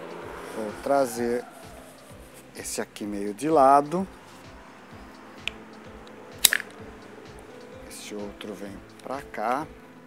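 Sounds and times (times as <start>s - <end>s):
background music with steady beat: 0.0s - 10.0s
pruning shears cracking a stick: 5.4s - 6.8s.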